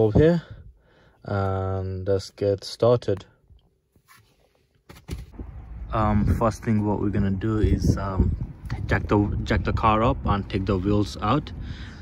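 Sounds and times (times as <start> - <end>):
wind rumbling on microphone: 5.1 - 12.0.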